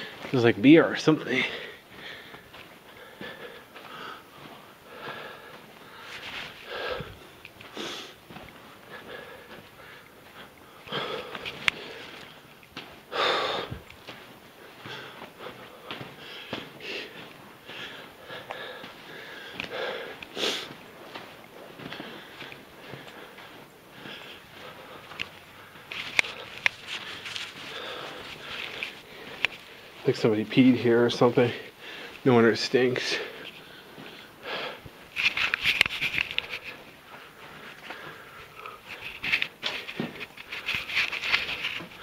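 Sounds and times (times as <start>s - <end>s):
man breathing and sniffing: 0.0s - 42.0s
scuffing steps on rock: 24.1s - 31.4s.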